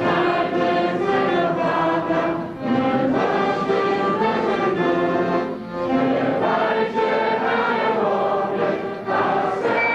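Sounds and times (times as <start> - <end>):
accompanying music: 0.0 - 9.9
choir singing slow melody: 0.0 - 9.9.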